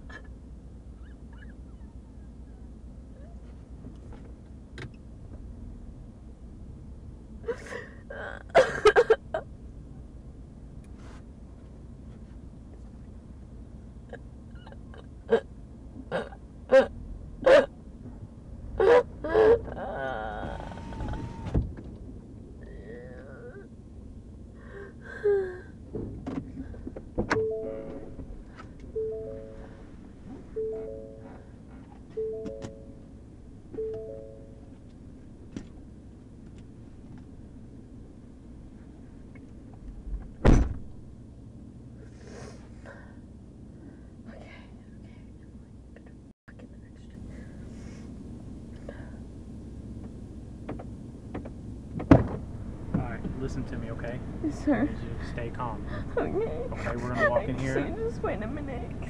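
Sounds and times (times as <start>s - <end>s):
vehicle cabin low rumble: 0.0s - 59.0s
woman whimpering squeaks: 1.0s - 3.4s, 14.6s - 15.0s, 18.8s - 21.4s
woman crying out: 18.8s - 20.8s
car cabin noise: 18.8s - 22.2s, 25.9s - 37.3s, 46.6s - 59.0s
electronic tones: 29.0s - 29.7s.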